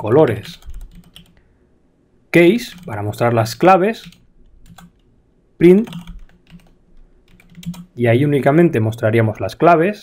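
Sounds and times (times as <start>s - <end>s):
computer keyboard typing: 0.4s - 1.4s, 2.6s - 3.0s, 4.0s - 5.0s, 5.8s - 8.0s.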